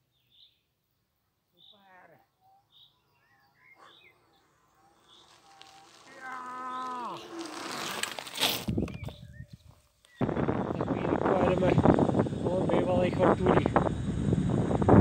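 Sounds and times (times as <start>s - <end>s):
electric scooter motor whine: 2.4s - 15.0s
wind buffeting microphone: 8.6s - 15.0s
tyre and air rush: 10.2s - 15.0s.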